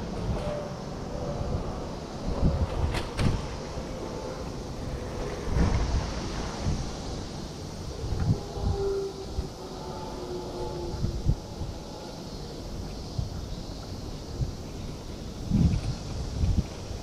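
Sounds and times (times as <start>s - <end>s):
wind buffeting microphone: 0.0s - 17.0s.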